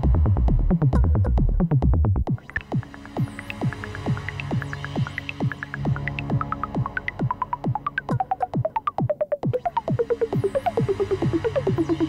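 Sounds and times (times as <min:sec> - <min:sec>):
falling-pitch synth sweeps: 0:02.3 - 0:12.0
high synth blips: 0:02.3 - 0:12.0
low steady synth drone: 0:09.5 - 0:12.0.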